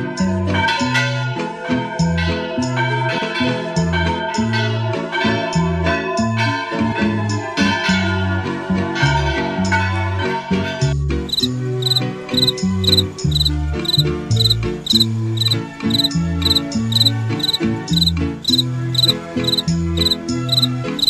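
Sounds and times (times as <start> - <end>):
instrumental music: 11.2 - 21.0
cricket chirping: 11.3 - 21.0.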